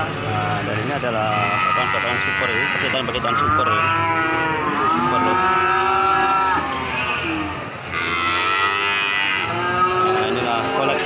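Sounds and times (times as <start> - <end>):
calf mooing: 1.2 - 11.0.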